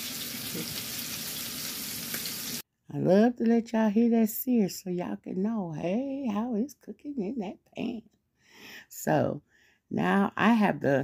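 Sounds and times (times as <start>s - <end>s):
fish sizzling in a frying pan: 0.0s - 2.6s.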